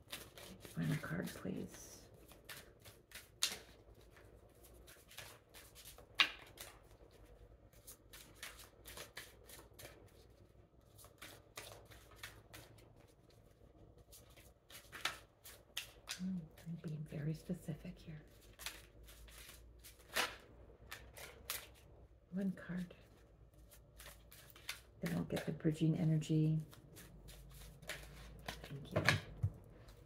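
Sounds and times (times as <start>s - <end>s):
cards being shuffled: 0.0s - 13.4s, 14.0s - 17.1s, 18.3s - 21.9s, 23.1s - 30.0s.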